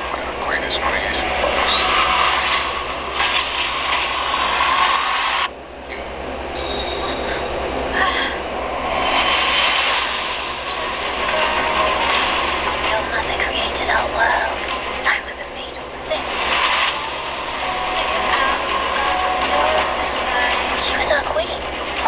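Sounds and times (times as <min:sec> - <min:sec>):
film dialogue through speakers: 0:00.0 - 0:22.0.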